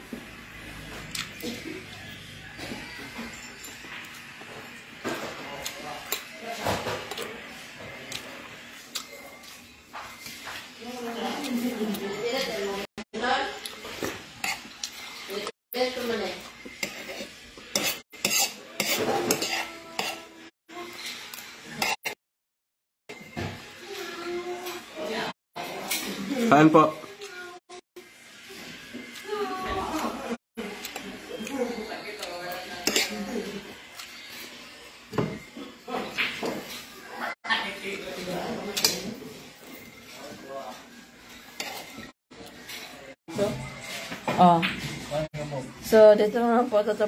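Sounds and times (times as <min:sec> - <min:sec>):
cutlery clinking on a plate: 0:16.8 - 0:20.2, 0:32.8 - 0:33.2.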